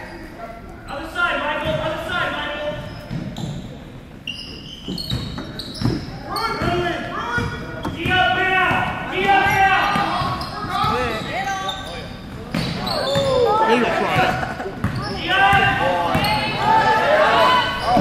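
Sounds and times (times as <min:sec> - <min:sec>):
sneaker squeaks: 0:02.7 - 0:08.8, 0:09.4 - 0:16.6, 0:17.4 - 0:18.0
people shouting: 0:15.2 - 0:18.0.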